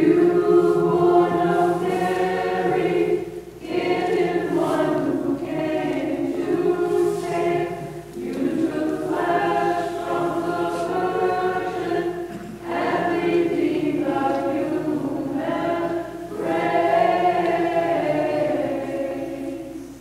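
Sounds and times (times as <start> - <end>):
choir singing a slow hymn: 0.0 - 20.0.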